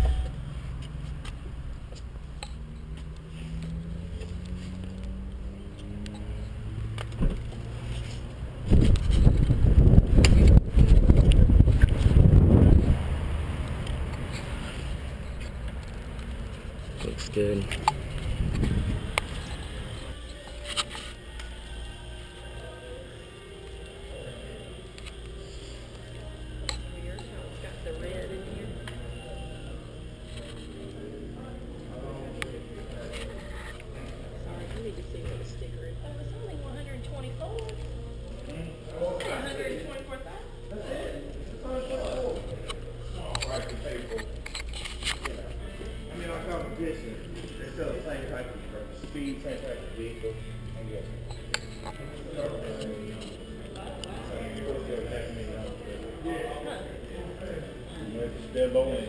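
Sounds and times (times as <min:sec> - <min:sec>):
faint background music: 0:00.0 - 0:59.0
steady low hum: 0:00.0 - 0:59.0.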